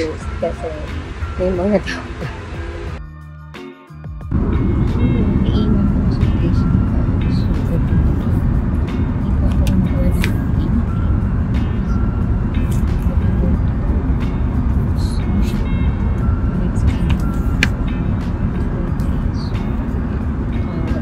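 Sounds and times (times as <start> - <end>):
airplane cabin engine rumble: 4.3 - 21.0.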